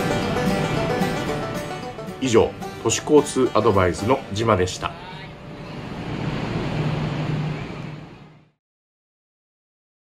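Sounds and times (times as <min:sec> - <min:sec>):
rushing noise: 0:04.7 - 0:08.6.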